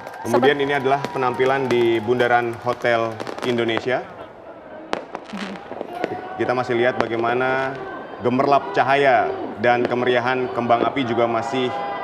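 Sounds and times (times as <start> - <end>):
fireworks popping: 0.0 - 4.2, 4.9 - 7.9
fireworks bang: 4.9 - 8.0.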